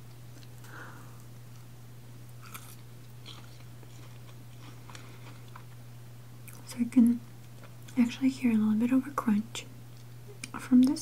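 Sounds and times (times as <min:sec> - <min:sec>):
marshmallow crunching: 0:00.0 - 0:05.8
steady low hum: 0:00.0 - 0:11.0.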